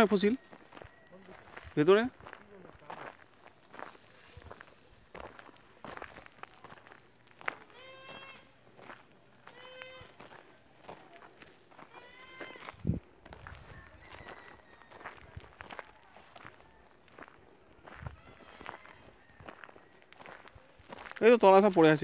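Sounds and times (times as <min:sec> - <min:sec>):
footsteps on dry dirt: 0:00.0 - 0:22.0
goat bleating: 0:07.7 - 0:08.5, 0:09.4 - 0:10.3, 0:11.9 - 0:12.7.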